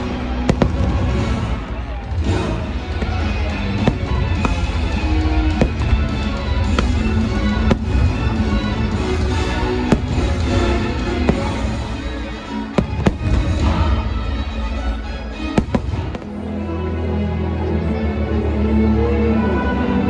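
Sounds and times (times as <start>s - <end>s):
fireworks bangs: 0.0s - 14.2s, 15.5s - 16.4s
music playing: 0.0s - 20.0s.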